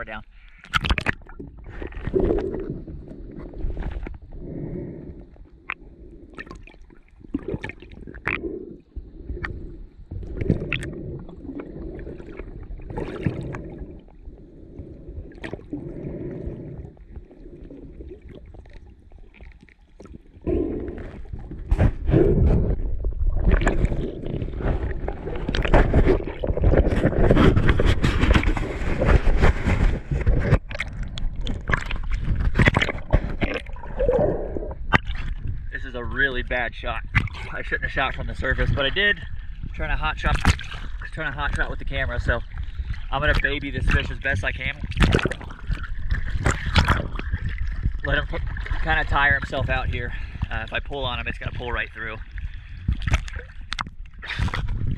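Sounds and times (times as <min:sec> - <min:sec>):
underwater gurgling: 0:00.0 - 0:54.9
water rushing and sloshing: 0:00.7 - 0:54.9.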